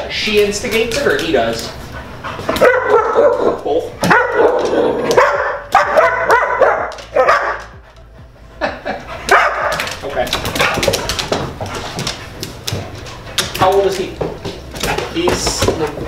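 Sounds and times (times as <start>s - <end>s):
dogs barking: 1.8s - 13.6s
person laughing: 8.4s - 9.3s.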